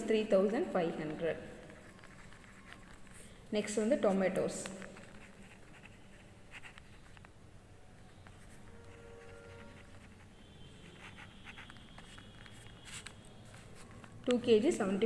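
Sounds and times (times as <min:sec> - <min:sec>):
pen scratching on paper: 0:00.5 - 0:07.2, 0:08.1 - 0:14.2.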